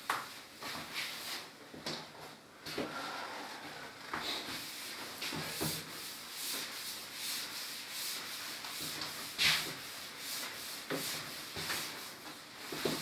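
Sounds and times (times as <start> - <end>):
cloth wiping a chalkboard: 0.2 - 1.5, 2.8 - 13.0.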